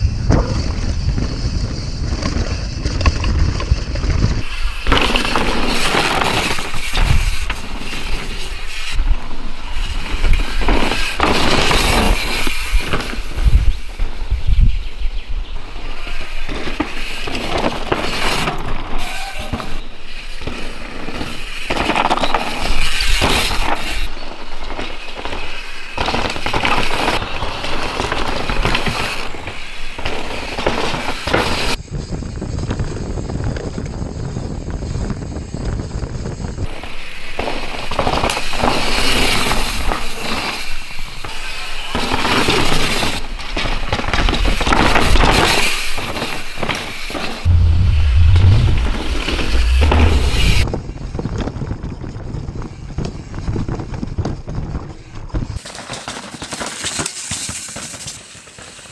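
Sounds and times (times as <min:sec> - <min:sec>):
bike tyres tearing through dirt: 0:00.1 - 0:14.2
bike rattling over roots: 0:00.5 - 0:08.8.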